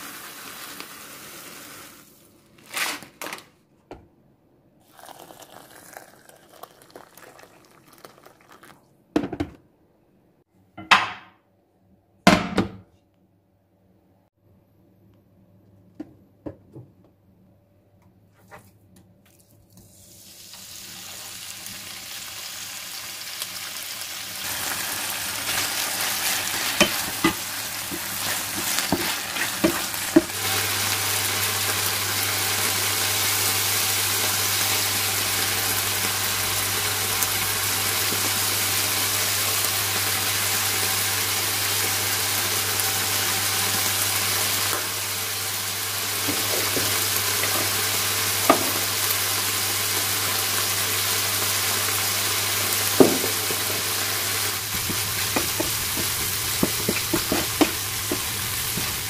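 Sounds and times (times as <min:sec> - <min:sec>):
chicken sizzling in hot oil: 0:00.0 - 0:02.2, 0:19.9 - 0:59.0
wooden spatula knocking on pan: 0:26.8 - 0:30.4, 0:53.0 - 0:53.8, 0:54.8 - 0:59.0.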